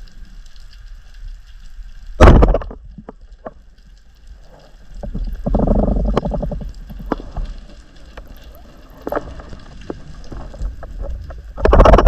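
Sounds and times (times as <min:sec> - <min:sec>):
underwater rumbling: 0:00.0 - 0:12.0.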